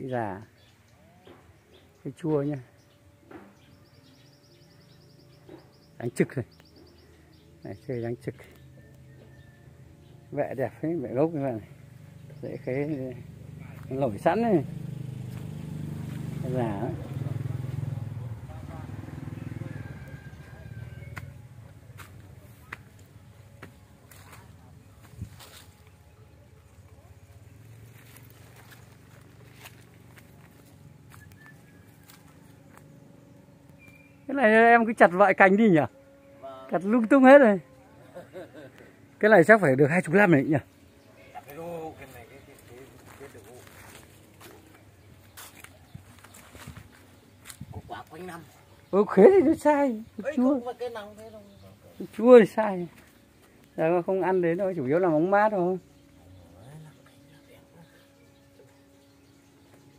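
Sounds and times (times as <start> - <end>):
low hum: 0.4 - 59.9
footsteps on dry leaves: 14.9 - 16.4, 20.1 - 26.8, 27.4 - 33.0, 41.4 - 48.4, 52.0 - 53.9.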